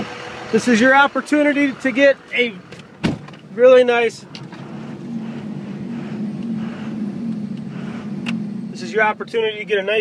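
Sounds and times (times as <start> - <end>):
diesel truck engine drone: 0.0 - 10.0.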